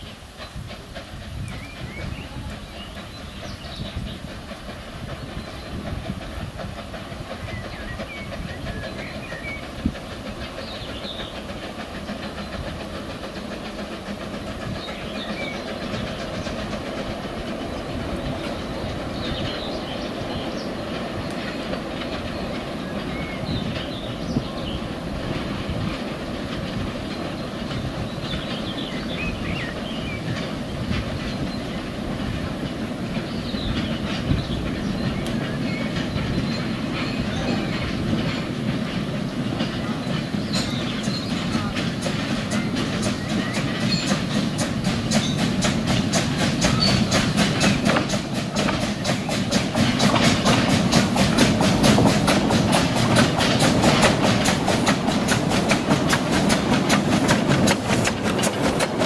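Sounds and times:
train wheels running on rails: 0:00.0 - 0:59.0.

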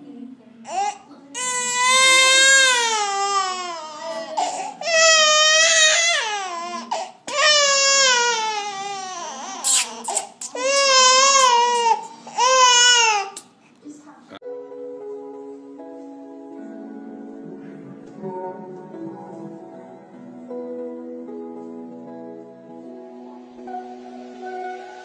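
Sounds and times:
baby crying: 0:00.6 - 0:13.5.

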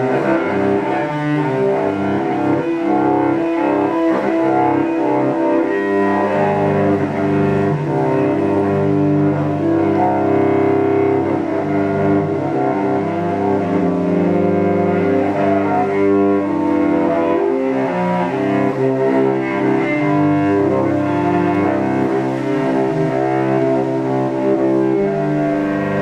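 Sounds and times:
bowed cello low notes: 0:00.0 - 0:26.0.

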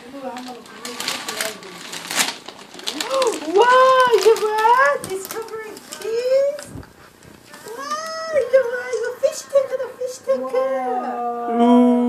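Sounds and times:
wrapping paper ripping: 0:00.1 - 0:09.1.

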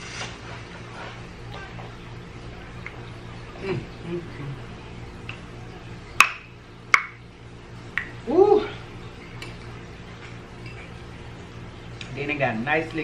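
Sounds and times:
person humming: 0:03.6 - 0:04.7, 0:08.2 - 0:08.8.

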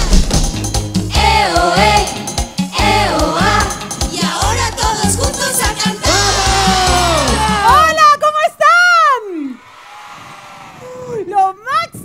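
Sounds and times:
upbeat pop dance song: 0:00.0 - 0:08.0
performer shouting: 0:06.1 - 0:08.1.

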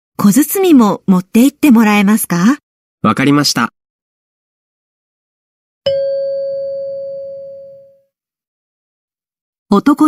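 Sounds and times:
bell-like chime: 0:05.9 - 0:08.0.

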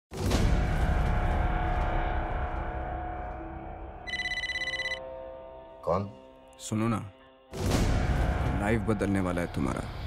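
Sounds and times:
mobile phone electronic trill: 0:04.1 - 0:05.0.

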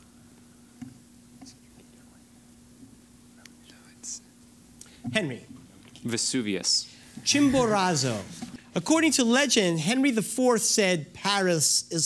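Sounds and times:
steady low hum: 0:00.0 - 0:12.0
people whispering: 0:01.4 - 0:02.5, 0:03.3 - 0:04.3.

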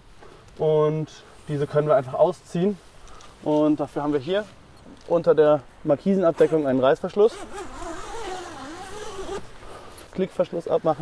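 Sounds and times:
zipper being pulled open: 0:07.2 - 0:09.5.

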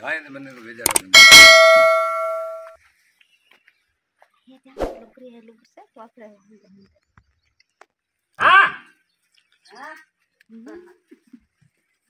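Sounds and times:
bell-like metal strike ringing: 0:01.0 - 0:02.8.

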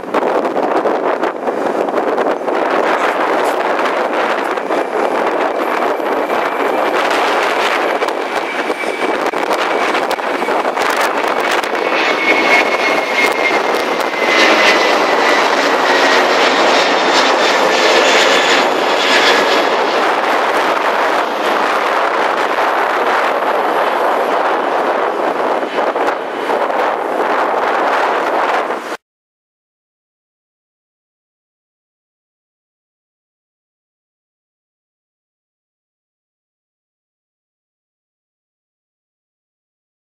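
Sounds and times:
jet airliner roaring overhead: 0:00.0 - 0:29.0.

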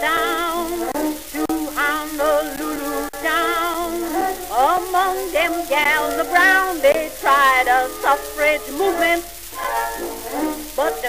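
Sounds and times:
record crackling hiss: 0:00.0 - 0:11.0.

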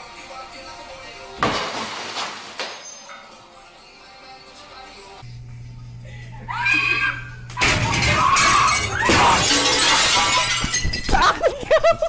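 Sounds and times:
glass shattering and falling: 0:01.4 - 0:03.4, 0:07.6 - 0:11.5
people shouting: 0:06.5 - 0:09.9.

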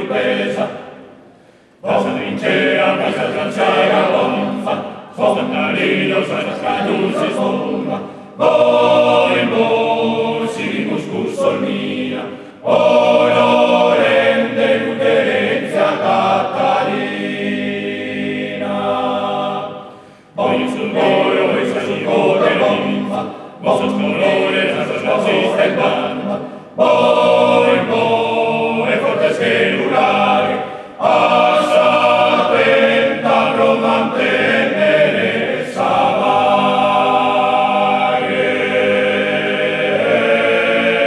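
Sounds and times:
men's choir singing a cappella: 0:00.0 - 0:41.0
breath: 0:01.2 - 0:01.8, 0:08.0 - 0:08.4, 0:12.3 - 0:12.6, 0:19.8 - 0:20.4, 0:23.3 - 0:23.6, 0:26.4 - 0:26.8, 0:30.6 - 0:31.0.

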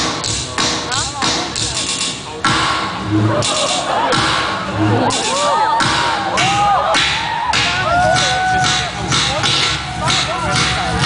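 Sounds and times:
live band playing loud music: 0:00.0 - 0:11.0.

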